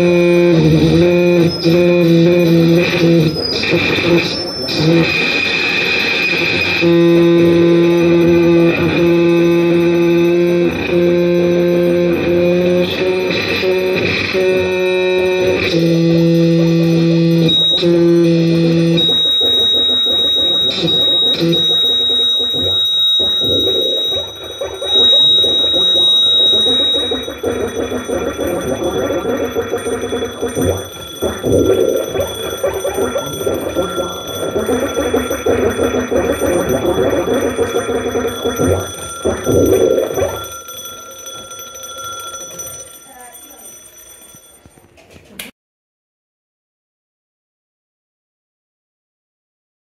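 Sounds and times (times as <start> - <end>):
electronic drone: 0.0 - 41.4
high piercing steady tone: 0.0 - 44.9.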